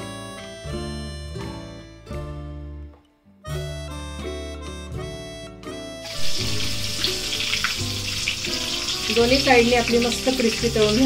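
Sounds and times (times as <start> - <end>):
fritters sizzling in hot oil: 6.1 - 11.0.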